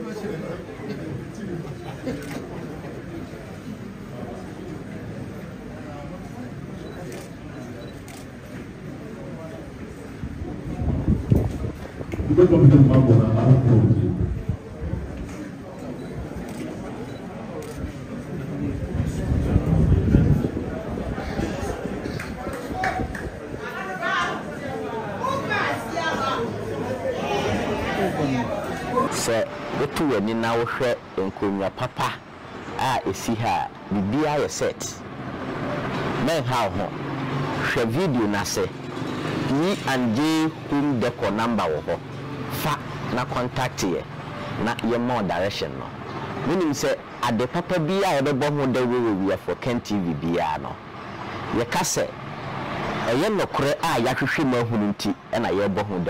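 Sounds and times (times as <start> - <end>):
crowd chatter: 0.0 - 56.0
steady background noise: 0.0 - 56.0
man speaking: 12.3 - 14.2, 28.9 - 35.0, 39.5 - 50.8, 53.0 - 56.0.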